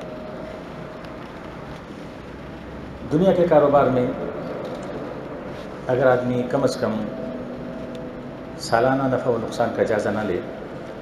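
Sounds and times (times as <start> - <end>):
faint steady tone: 0.0 - 11.0
room background noise: 0.0 - 11.0.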